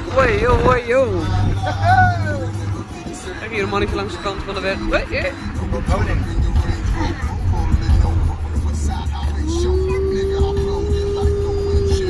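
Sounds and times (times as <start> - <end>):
music in a car: 0.0 - 12.0
steady low hum: 0.0 - 12.0
voice with gliding pitch: 0.0 - 12.0.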